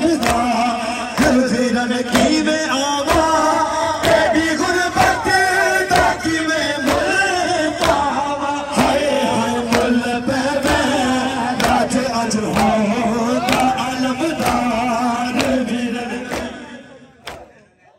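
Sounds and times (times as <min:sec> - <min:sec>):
sharp rhythmic strikes: 0:00.0 - 0:17.7
men chanting a lament: 0:00.0 - 0:17.9.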